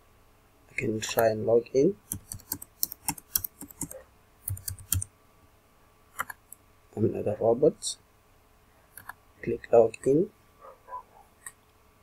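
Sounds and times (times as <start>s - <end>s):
keyboard keys clicking: 2.1s - 5.1s.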